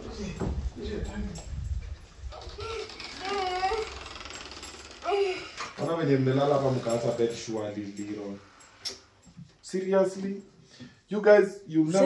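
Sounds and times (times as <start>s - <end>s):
faint room noise: 0.0s - 12.0s
man's voice: 11.1s - 12.0s.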